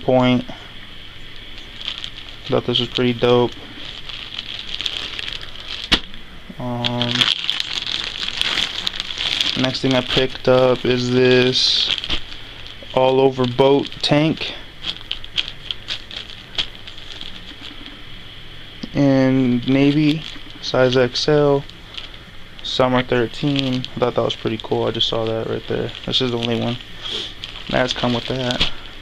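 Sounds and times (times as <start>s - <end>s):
plastic bag crinkling: 0.3s - 29.0s.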